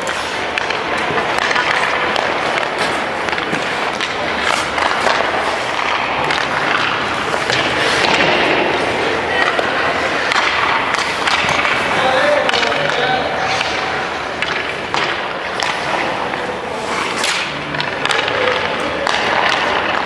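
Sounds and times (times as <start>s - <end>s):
pucks and sticks clacking: 0.0s - 20.0s
skate blades scraping ice: 0.0s - 20.0s.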